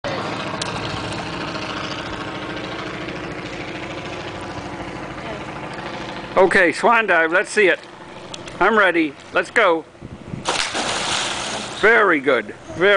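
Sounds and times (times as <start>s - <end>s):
engine running with throb: 0.0s - 12.9s.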